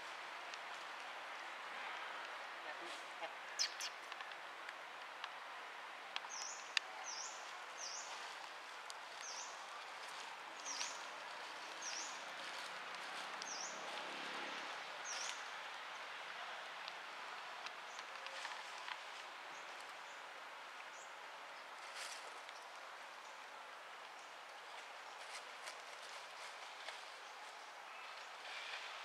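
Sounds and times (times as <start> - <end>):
bird chirping: 3.6 - 4.0.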